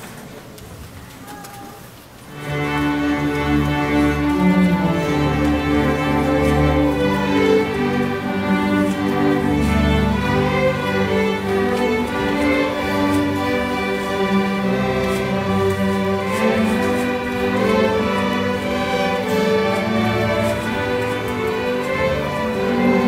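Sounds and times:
cellos and basses playing low part: 2.3s - 23.0s
violins playing: 2.3s - 23.0s.

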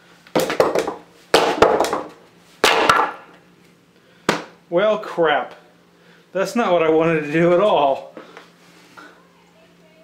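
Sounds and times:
boot stomping on boards: 0.3s - 3.2s
wood cracking and knocking: 0.4s - 3.2s.

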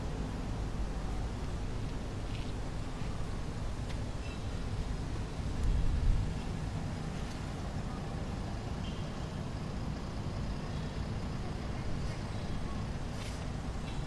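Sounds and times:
road traffic rumble: 0.0s - 14.0s.

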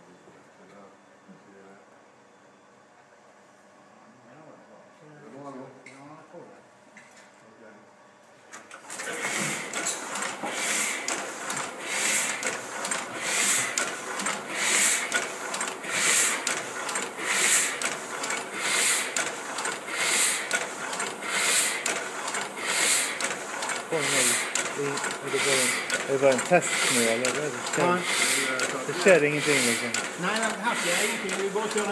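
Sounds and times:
printing press clattering: 8.7s - 31.9s.

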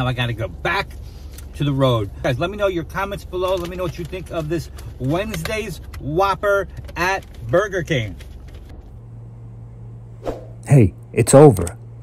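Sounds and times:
car cabin background noise: 0.0s - 12.0s
steady low hum: 0.0s - 12.0s.

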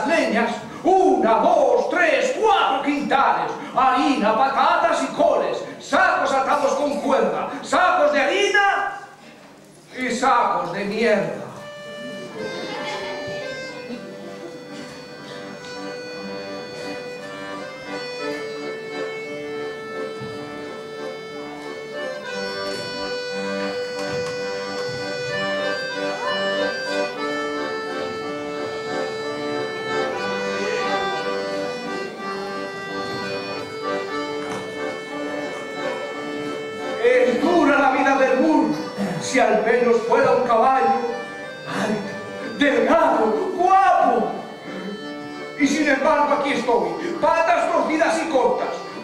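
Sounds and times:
accordions playing: 0.0s - 49.0s.

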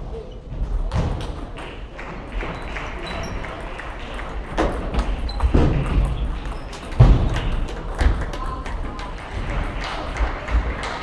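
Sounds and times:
murmur of the hall: 0.0s - 11.0s
table tennis balls clicking: 1.2s - 10.2s.

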